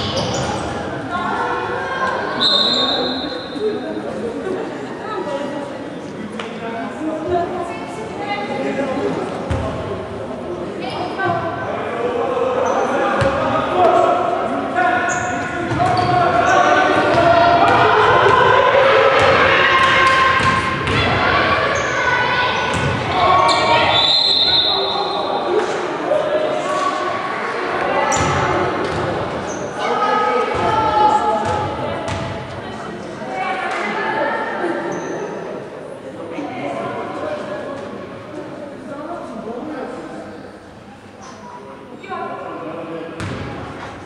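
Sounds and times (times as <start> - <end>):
voices of players and onlookers: 0.0 - 44.0.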